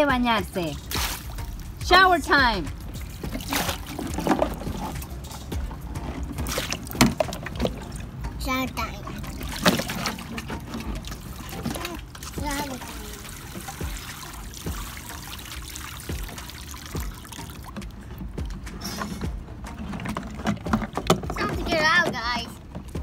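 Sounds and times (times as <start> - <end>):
water splashing: 0.0 - 23.0
water pouring from watering can: 0.7 - 1.8, 2.7 - 8.2, 9.0 - 21.6.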